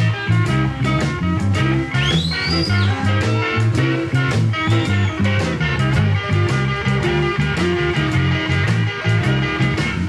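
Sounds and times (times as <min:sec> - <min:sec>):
electric guitar: 0:00.0 - 0:10.0
walking bass line: 0:00.0 - 0:10.0.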